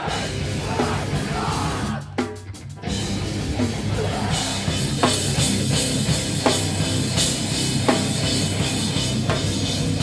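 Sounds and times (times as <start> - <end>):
distorted electric guitar: 0.0 - 10.0
drum kit: 0.0 - 10.0.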